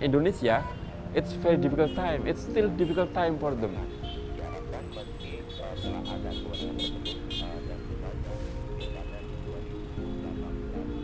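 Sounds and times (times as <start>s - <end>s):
background music: 0.0s - 11.0s
vehicle horn: 5.2s - 7.6s, 8.8s - 9.3s.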